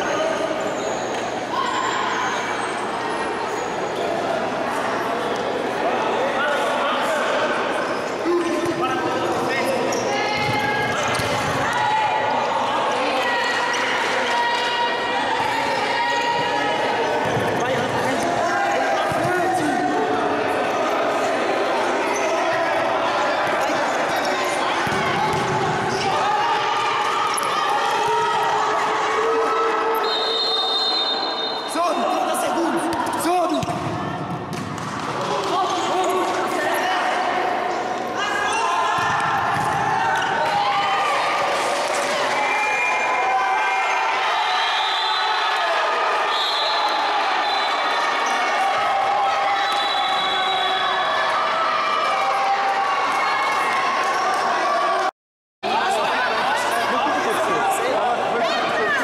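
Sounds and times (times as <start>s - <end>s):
people shouting in a sports hall: 0.0s - 59.0s
ball bouncing on wooden court: 24.8s - 25.8s, 32.9s - 35.5s, 39.0s - 40.6s.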